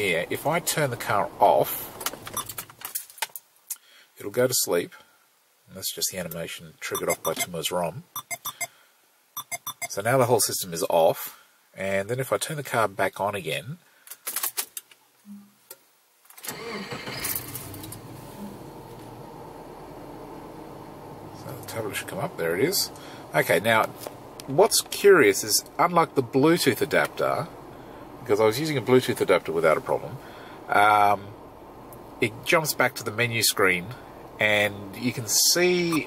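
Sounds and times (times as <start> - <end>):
car engine idling hum: 17.6 - 36.0.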